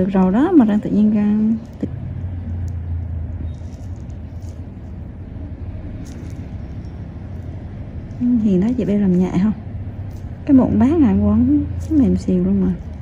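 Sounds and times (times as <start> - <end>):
steady low hum: 0.0 - 13.0.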